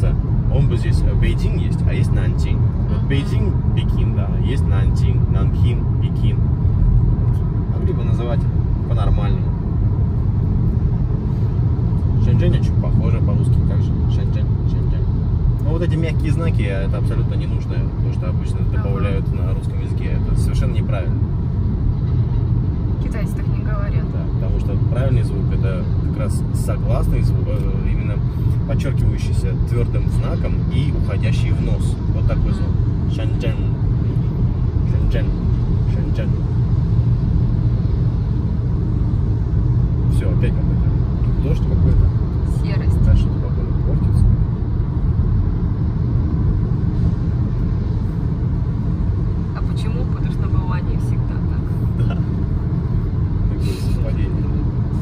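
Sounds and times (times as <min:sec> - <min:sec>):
car engine and tyre noise: 0:00.0 - 0:55.0.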